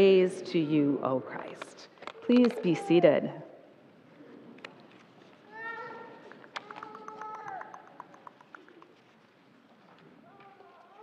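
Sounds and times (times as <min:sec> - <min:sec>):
faint rustling and shuffling: 0:00.0 - 0:11.0.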